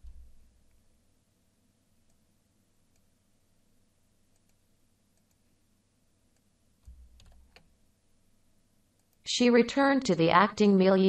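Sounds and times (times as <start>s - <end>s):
faint keyboard clicks: 4.3s - 5.4s, 6.3s - 7.7s, 9.0s - 9.3s.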